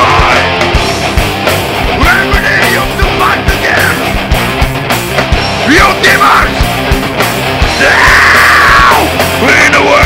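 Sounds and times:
singer yelling long note: 0.0 - 0.6, 7.7 - 10.0
metal band playing: 0.0 - 10.0.

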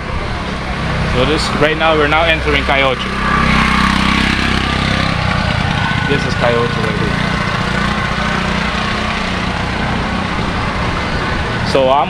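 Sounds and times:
motorbike engine running: 0.0 - 12.0.

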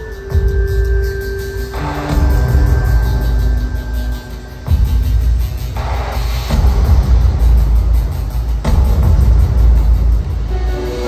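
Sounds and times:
live band music over pa: 0.0 - 6.9.

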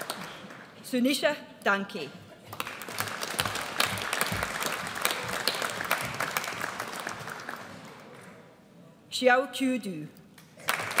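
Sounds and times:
audience applause: 0.0 - 0.8, 2.5 - 8.2, 10.6 - 11.0.

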